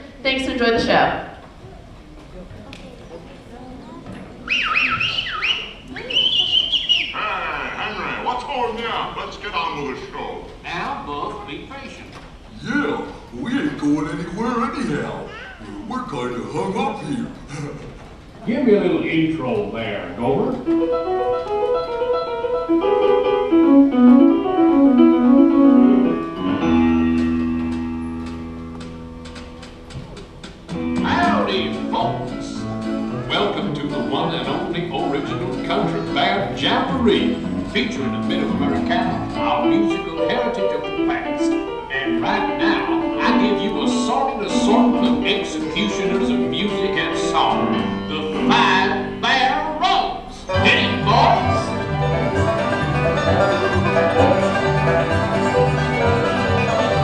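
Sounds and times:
swooping whistle: 4.4 - 7.2
warbling whistle: 4.4 - 7.2
show music over speakers: 50.5 - 57.0.

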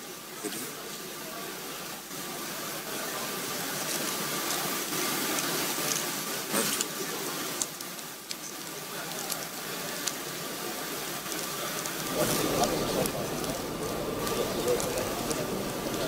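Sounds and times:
background hiss: 0.0 - 16.0
indistinct murmur of voices: 0.0 - 16.0
faint steady whine: 8.2 - 16.0
scattered clicks: 11.1 - 16.0.

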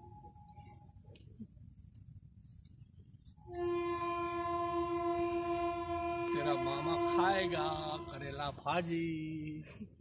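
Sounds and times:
long steady horn blast: 3.5 - 8.9
man talking: 6.3 - 9.8.

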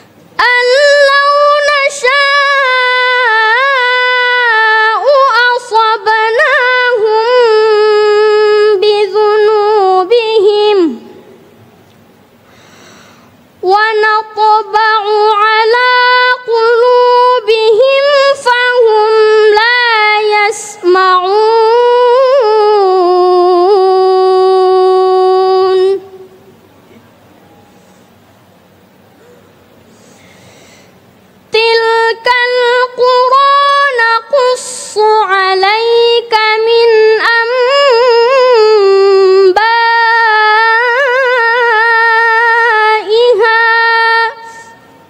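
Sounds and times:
person reciting in a high voice: 0.4 - 11.3, 13.6 - 26.3, 31.5 - 44.9.

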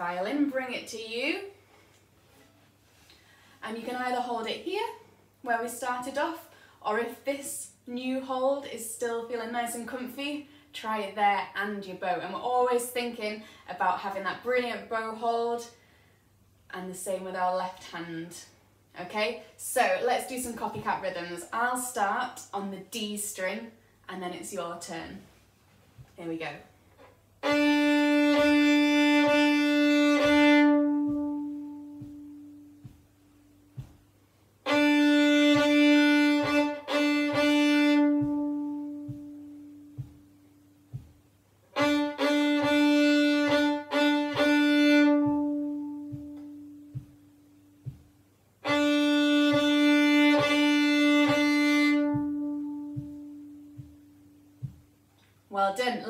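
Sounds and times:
fiddle bowing repeated notes: 27.0 - 33.9, 34.6 - 41.1, 41.7 - 48.0, 48.6 - 54.8.

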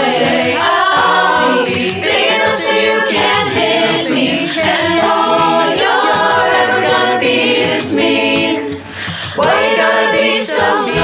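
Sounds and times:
chorus singing a cappella: 0.0 - 11.0.

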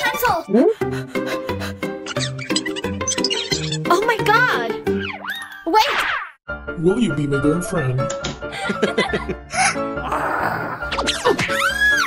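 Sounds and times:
squeaky cartoon sound effect: 2.0 - 4.2, 4.9 - 6.4.

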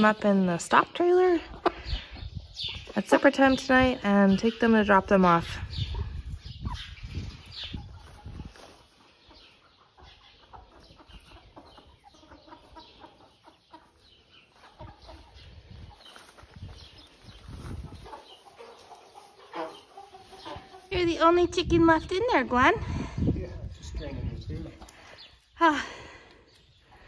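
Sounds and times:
chickens clucking softly: 5.7 - 16.4, 17.2 - 20.9.

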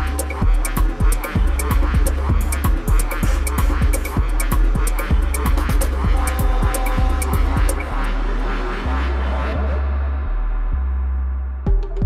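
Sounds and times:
fast kick drum: 0.0 - 7.8, 11.7 - 12.0
hi-hats ticking: 0.0 - 7.9
steady bass line: 0.0 - 12.0.

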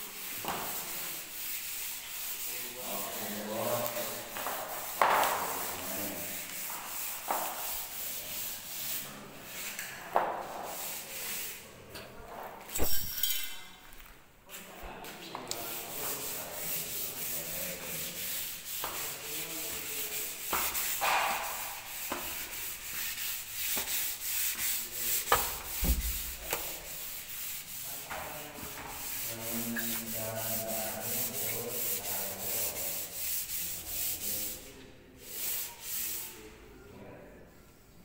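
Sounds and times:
hand rubbing wooden handrail: 15.7 - 34.6.

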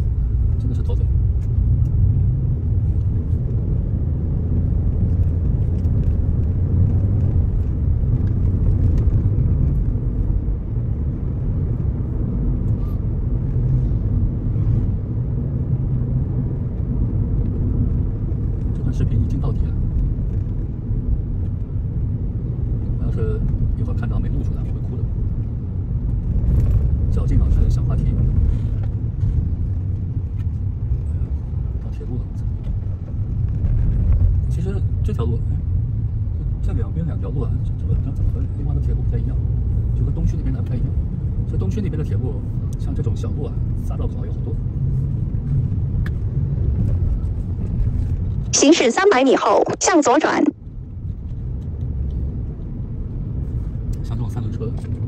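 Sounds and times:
engine and tyre rumble in car: 0.0 - 48.8, 50.5 - 55.0.

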